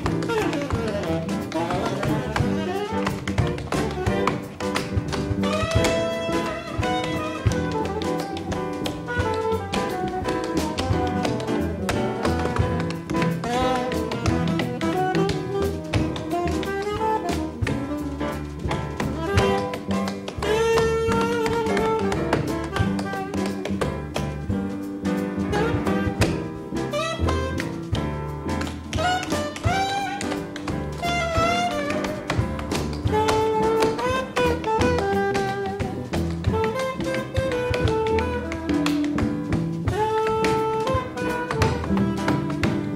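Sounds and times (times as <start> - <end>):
saxophone playing: 0.0 - 4.7, 5.3 - 12.8, 13.4 - 18.4, 19.1 - 23.7, 25.5 - 27.6, 28.9 - 42.9
drums: 0.0 - 42.9
live jazz band: 0.0 - 42.9
tap shoes striking stage: 0.0 - 42.9
upright bass: 0.0 - 42.9.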